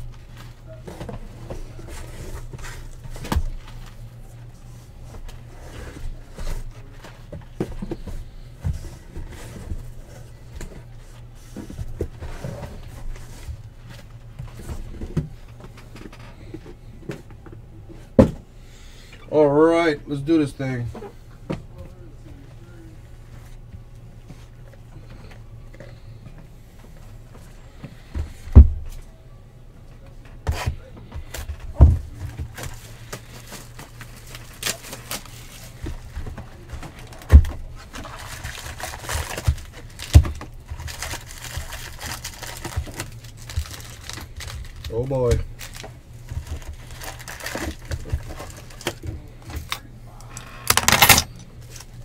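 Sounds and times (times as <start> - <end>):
cardboard and plastic rustling: 0.0 - 18.5, 30.0 - 52.0
steady low hum: 0.0 - 52.0.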